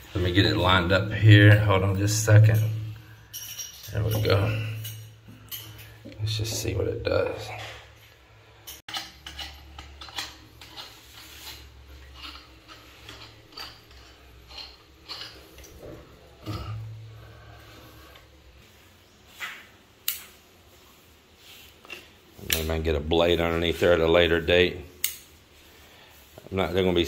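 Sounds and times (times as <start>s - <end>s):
low steady hum: 0.0s - 19.2s.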